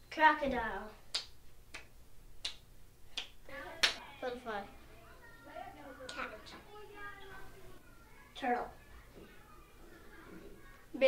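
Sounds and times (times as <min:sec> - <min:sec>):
hands snapping clicks: 0:01.1 - 0:02.6
child's voice: 0:03.5 - 0:11.0.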